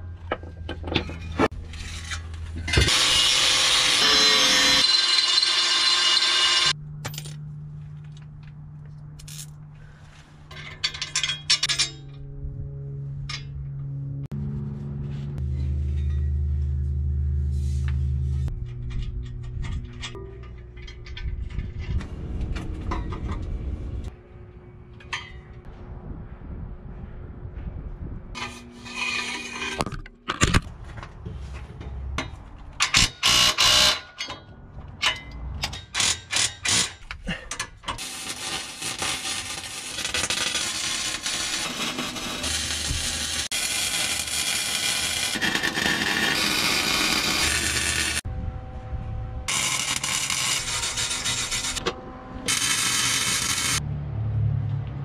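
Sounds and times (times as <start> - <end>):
welding crackling hiss: 38.0 - 48.2, 49.5 - 51.8, 52.5 - 53.8.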